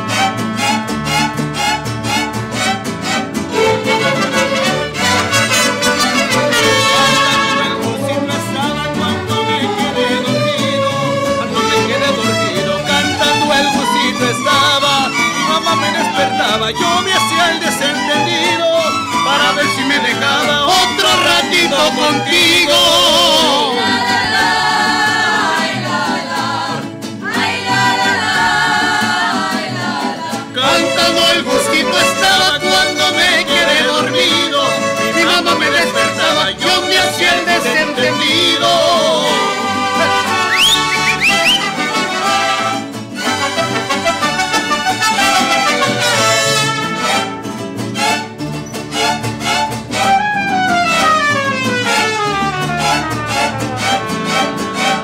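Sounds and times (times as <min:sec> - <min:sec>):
mariachi ensemble playing: 0:00.0 - 0:55.0
person singing: 0:03.8 - 0:42.8.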